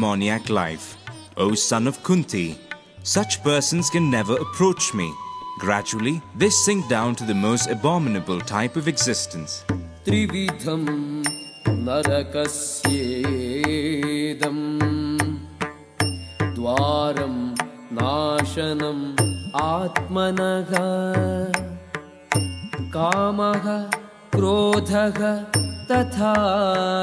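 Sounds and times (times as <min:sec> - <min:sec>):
devotional music accompaniment: 0:00.0 - 0:27.0
sharp percussion strokes: 0:09.7 - 0:13.8, 0:15.9 - 0:17.7, 0:19.2 - 0:20.9, 0:21.5 - 0:24.0, 0:25.5 - 0:26.5.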